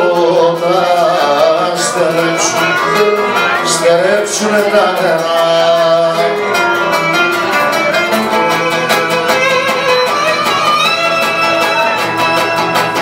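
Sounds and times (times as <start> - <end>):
strummed lute and guitar: 0.0 - 13.0
bowed lyra melody: 2.6 - 13.0.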